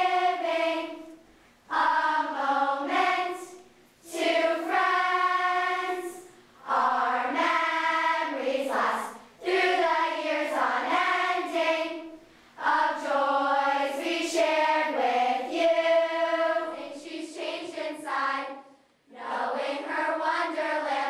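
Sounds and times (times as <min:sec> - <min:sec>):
girls singing in unison: 0:00.0 - 0:21.0.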